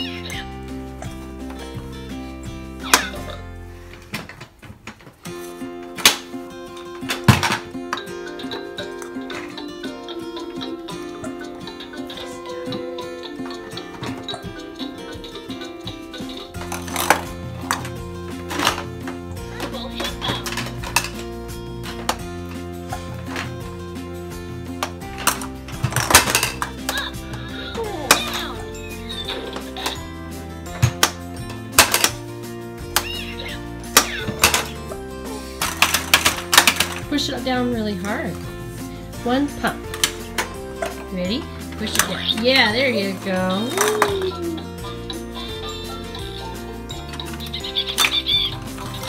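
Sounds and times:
music with melody and bass: 0:00.0 - 0:04.2, 0:05.2 - 0:49.0
plastic balls rolling down ramps: 0:16.3 - 0:23.8, 0:24.7 - 0:38.4.

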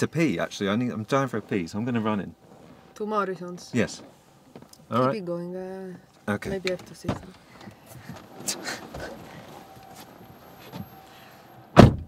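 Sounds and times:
car door slamming: 0:11.7 - 0:12.0.

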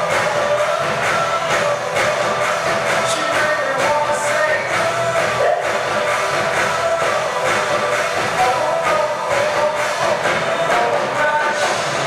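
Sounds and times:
drums beating: 0:00.0 - 0:12.0.

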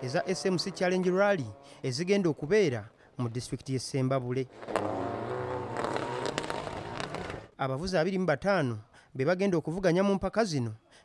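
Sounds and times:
rally car engines running: 0:04.5 - 0:07.5.

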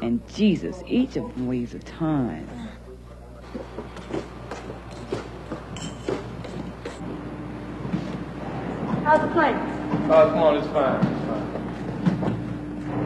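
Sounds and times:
steady hum: 0:00.0 - 0:13.0
footsteps: 0:03.4 - 0:13.0.

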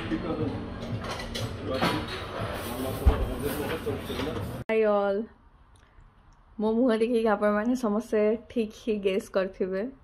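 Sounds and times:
dishes and utensils clinking: 0:00.8 - 0:04.6.

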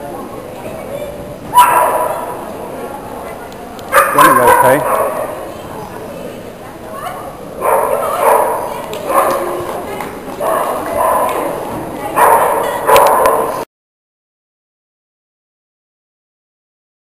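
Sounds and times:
small dog barking: 0:01.6 - 0:02.4, 0:03.9 - 0:05.4, 0:07.1 - 0:09.6, 0:12.2 - 0:13.6.

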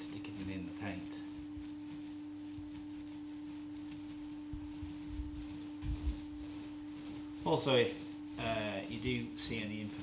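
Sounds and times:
steady hum: 0:00.0 - 0:10.0
soft low thumps: 0:04.4 - 0:06.7.

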